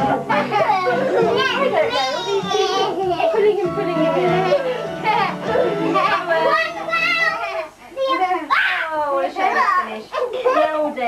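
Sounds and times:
music playing: 0.0 - 7.7
children shouting and laughing: 0.0 - 10.9.

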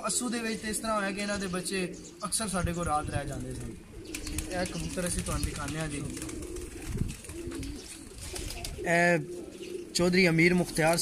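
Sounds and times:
pigeons cooing: 0.0 - 11.0.

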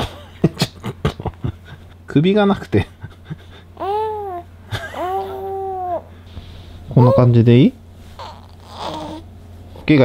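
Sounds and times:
infant cooing: 3.8 - 6.1, 7.0 - 7.3, 8.2 - 9.3.

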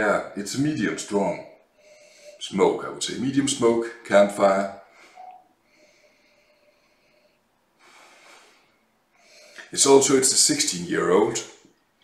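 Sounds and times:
man inhaling through nose: 1.7 - 2.4, 4.9 - 9.7.

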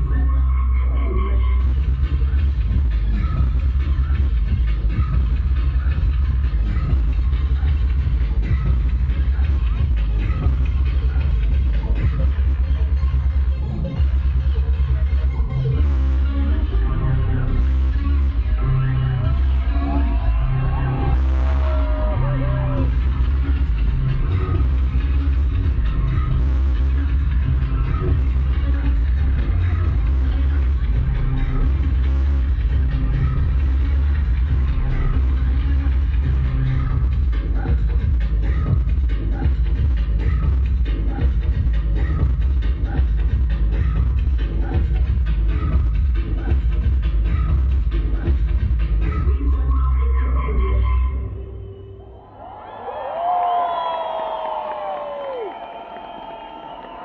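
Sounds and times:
loud live electronic pop music: 0.0 - 57.0
crowd cheering and screaming: 19.2 - 23.6, 52.0 - 57.0.

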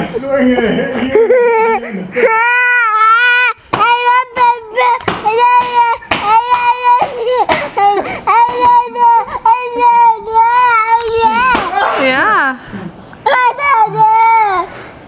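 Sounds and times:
person laughing hysterically: 0.9 - 2.7.

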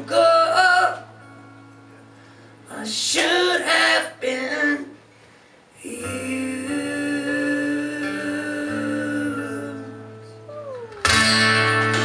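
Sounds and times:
loud guitar strum: 11.0 - 12.0.

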